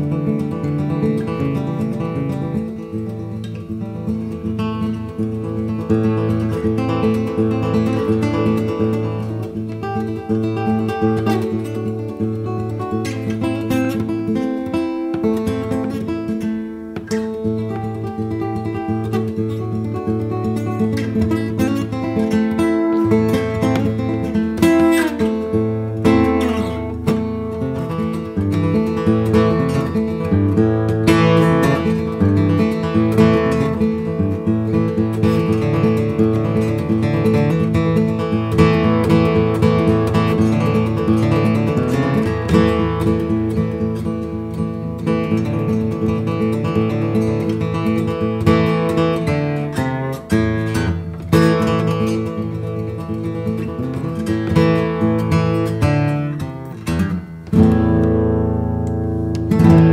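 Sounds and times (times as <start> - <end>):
fingerpicked banjo-style guitar: 0.0 - 59.9.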